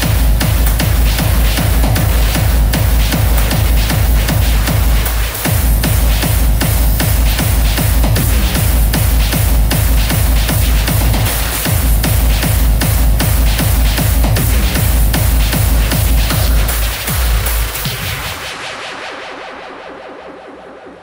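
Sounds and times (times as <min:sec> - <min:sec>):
pounding kick drum: 0:00.0 - 0:19.2
hardstyle dance music: 0:00.0 - 0:21.0.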